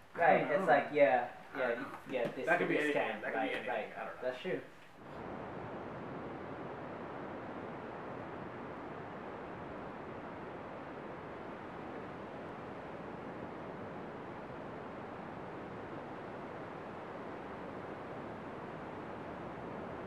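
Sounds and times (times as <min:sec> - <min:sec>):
wind: 0:04.7 - 0:20.0.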